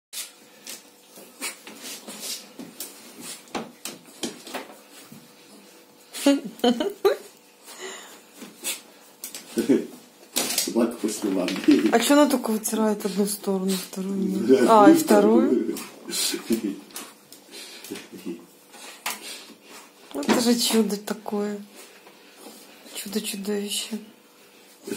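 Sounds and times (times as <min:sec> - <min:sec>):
dog rubbing on a towel: 0:00.2 - 0:03.5.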